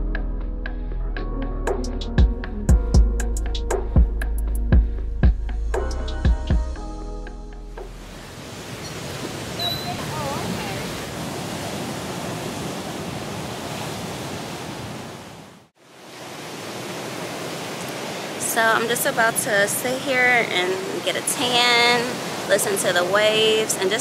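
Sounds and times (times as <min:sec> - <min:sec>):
music: 0:00.0 - 0:08.2
ocean surf breaking: 0:08.0 - 0:24.0.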